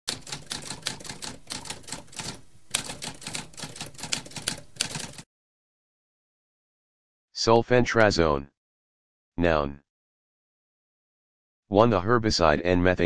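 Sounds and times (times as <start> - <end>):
typewriter keys clacking: 0.1 - 5.2.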